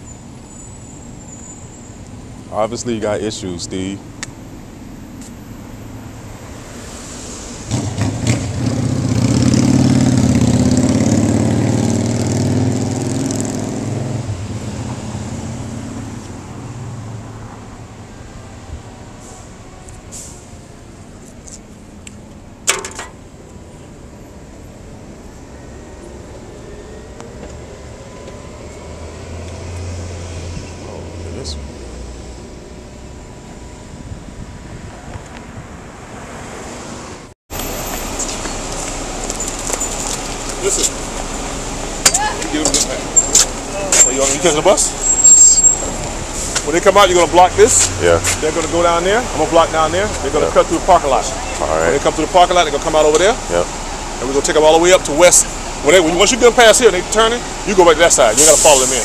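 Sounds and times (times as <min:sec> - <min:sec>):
vehicle engine: 0:00.0 - 0:59.0
low engine hum: 0:37.6 - 0:45.2.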